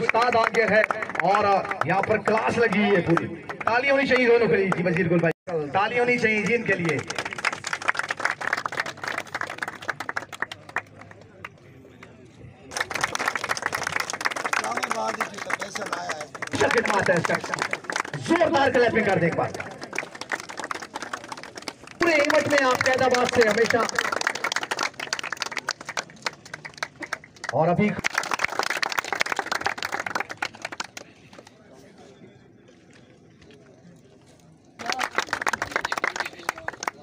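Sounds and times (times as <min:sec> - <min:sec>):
crowd clapping: 0:00.0 - 0:05.4, 0:06.3 - 0:31.5, 0:34.8 - 0:37.0.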